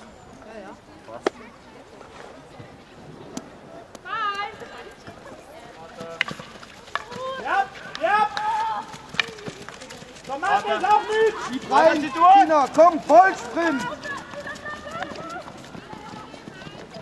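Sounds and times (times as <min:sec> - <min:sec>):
girls calling and shouting: 0:03.8 - 0:06.0, 0:06.7 - 0:17.0.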